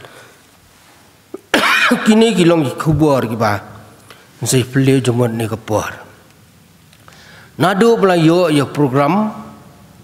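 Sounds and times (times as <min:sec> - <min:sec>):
man coughing: 0:01.4 - 0:02.2.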